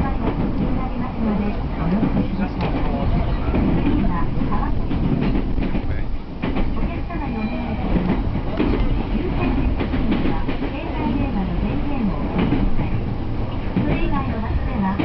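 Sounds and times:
train car rumbling: 0:00.0 - 0:15.0
wheel clacks over rail joints: 0:00.2 - 0:07.1, 0:07.9 - 0:15.0.

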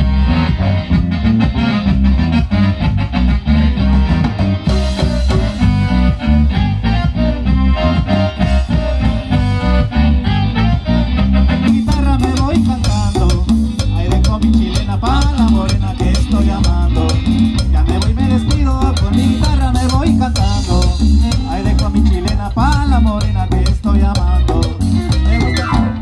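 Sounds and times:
electric bass line: 0:00.0 - 0:26.0
electric guitar and keyboard melody: 0:00.0 - 0:26.0
drum kit dance beat: 0:00.9 - 0:09.9, 0:11.7 - 0:26.0.

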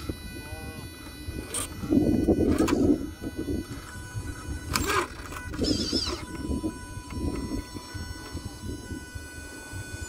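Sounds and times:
electric motor and gearbox whining: 0:00.0 - 0:10.0
warbling high whistle: 0:02.9 - 0:10.0.

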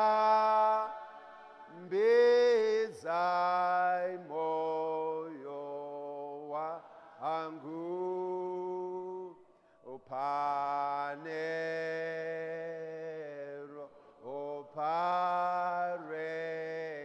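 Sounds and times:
man singing a slow hymn: 0:00.0 - 0:17.0.

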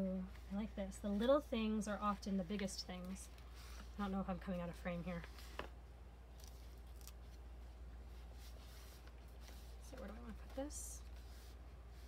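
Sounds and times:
paper sticker being peeled: 0:06.4 - 0:07.4.

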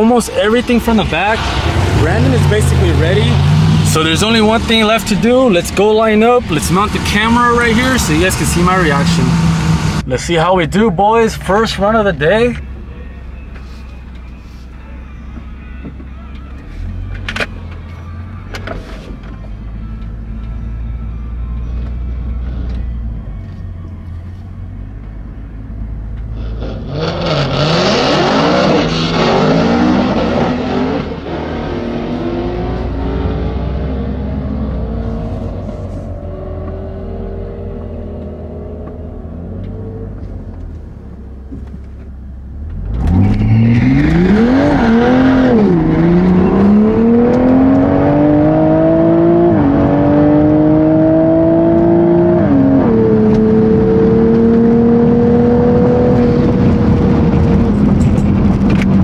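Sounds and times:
car engine revving: 0:00.0 - 0:12.4, 0:26.2 - 0:41.2, 0:42.5 - 0:59.0.

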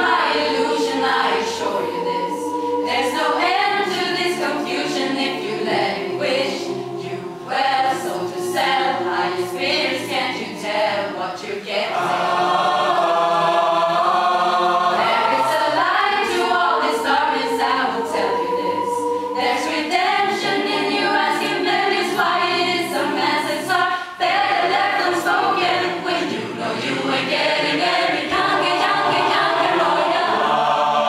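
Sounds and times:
mixed choir singing a cappella: 0:00.0 - 0:31.0.

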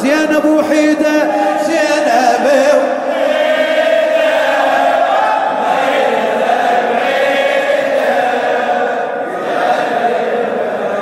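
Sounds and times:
men singing a mourning chant: 0:00.1 - 0:04.7.

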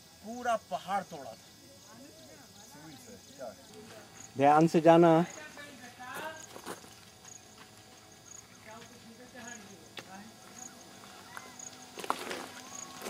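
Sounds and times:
distant voices talking: 0:00.3 - 0:13.0.

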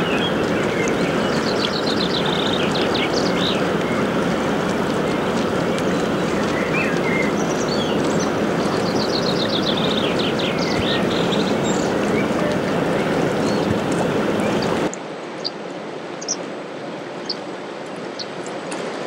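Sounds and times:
passing motor ship wash: 0:00.0 - 0:19.0
river water rushing: 0:00.0 - 0:19.0.

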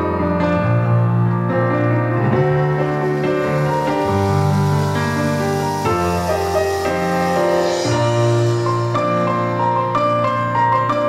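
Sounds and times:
slow keyboard chord music: 0:02.0 - 0:10.3.

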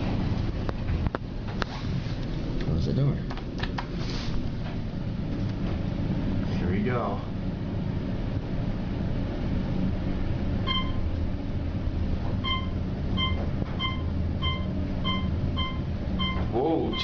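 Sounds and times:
elevator ride rumble: 0:00.0 - 0:17.0
short electronic beep: 0:10.7 - 0:11.0, 0:12.4 - 0:17.0.

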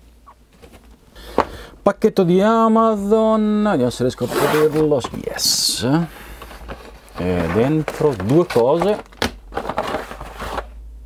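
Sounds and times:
paper and plastic packaging rustling: 0:04.1 - 0:10.8.

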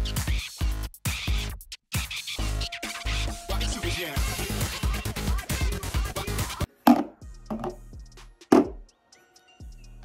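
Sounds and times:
background music: 0:02.4 - 0:10.0
knocks: 0:08.5 - 0:08.8.

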